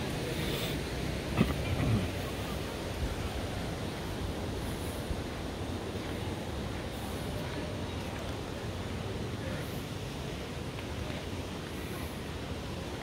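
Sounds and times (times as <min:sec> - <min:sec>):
faint voice: 0:00.2 - 0:03.3.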